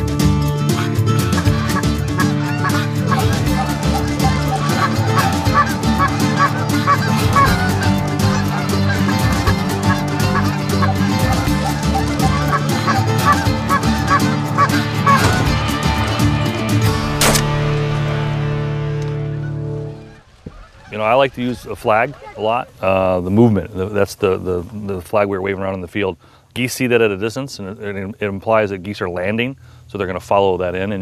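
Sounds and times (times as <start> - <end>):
geese honking: 0.7 - 17.6, 18.8 - 23.2.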